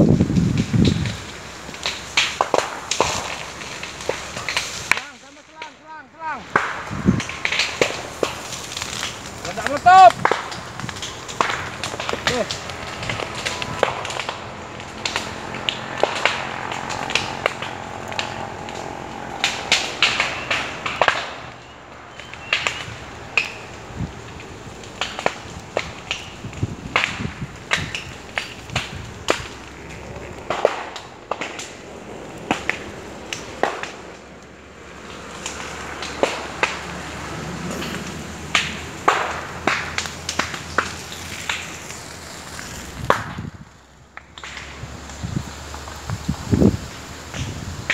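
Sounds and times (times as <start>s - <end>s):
dry brush crackling: 0.0s - 47.9s
low hum: 11.1s - 25.0s.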